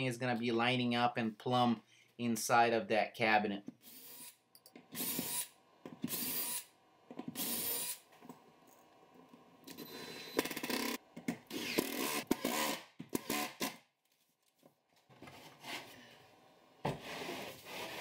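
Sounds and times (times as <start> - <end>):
power drill driving screws into wood: 3.8 - 6.7, 7.3 - 8.0, 9.7 - 13.8.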